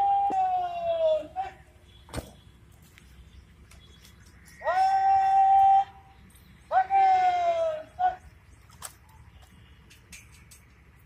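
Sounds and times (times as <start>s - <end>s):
person shouting a command: 0.0s - 1.7s, 4.6s - 6.1s, 6.7s - 8.3s.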